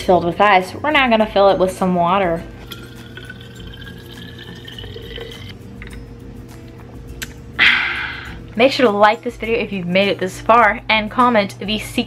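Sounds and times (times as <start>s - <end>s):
water running into a bottle: 2.5s - 5.6s.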